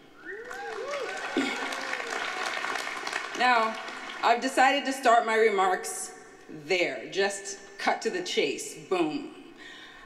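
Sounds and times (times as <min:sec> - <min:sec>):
cheering and whooping: 0:00.2 - 0:03.3
audience applause: 0:00.3 - 0:04.2.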